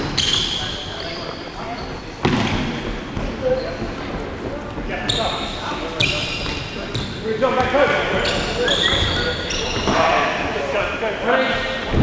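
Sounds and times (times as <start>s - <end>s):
ball kicked with echoing thud: 2.2s - 2.8s.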